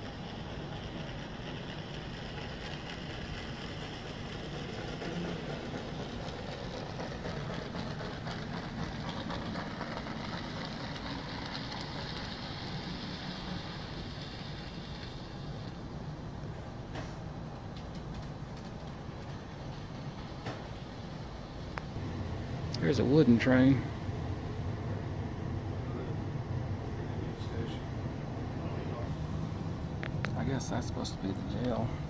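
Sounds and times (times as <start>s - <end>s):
model train whirring: 0.0s - 27.8s, 28.5s - 32.0s.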